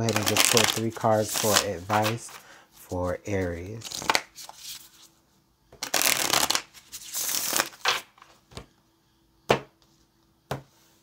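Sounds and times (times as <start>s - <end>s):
cards shuffling: 0.0s - 2.4s, 3.4s - 5.1s, 5.8s - 8.4s.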